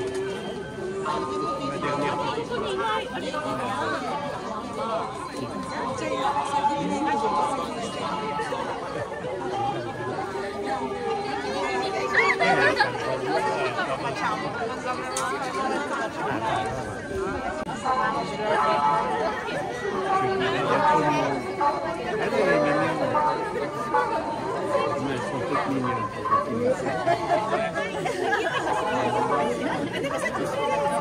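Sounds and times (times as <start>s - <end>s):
crowd chatter: 0.0s - 31.0s.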